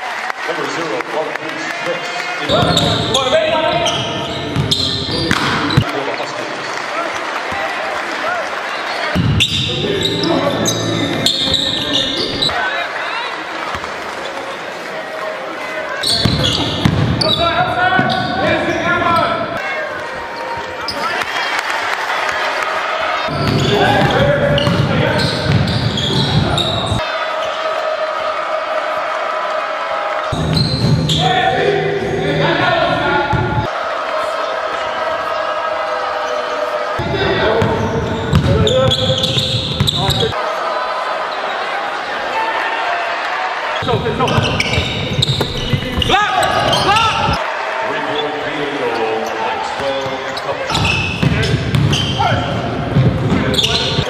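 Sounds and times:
crowd noise: 0.0 - 54.0
unclear voices: 9.0 - 21.2
ball bouncing on hardwood court: 16.2 - 17.2, 23.3 - 26.6, 37.6 - 40.3, 44.3 - 47.4, 50.7 - 54.0.

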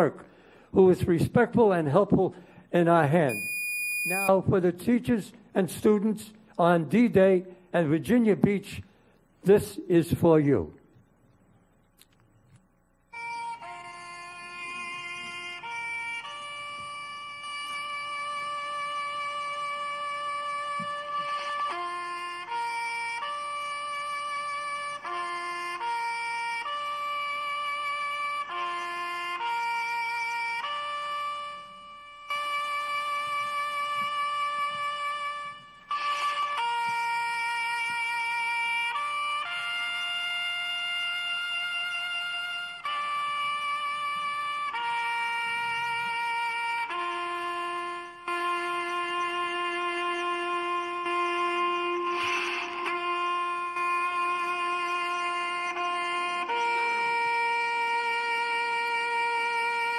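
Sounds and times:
harmonica played slowly: 1.6 - 5.2, 13.1 - 59.9.

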